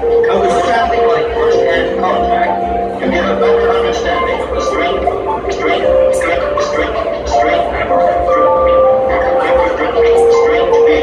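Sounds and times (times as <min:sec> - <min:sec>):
held synth notes: 0:00.0 - 0:11.0
pulsing low electronic beat: 0:00.0 - 0:11.0.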